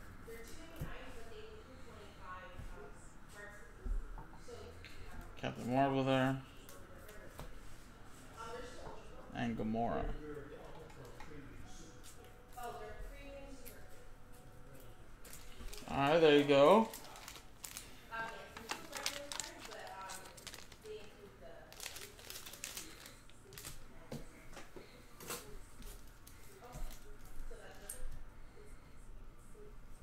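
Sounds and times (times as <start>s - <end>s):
foil wrappers crinkling: 15.2s - 23.8s.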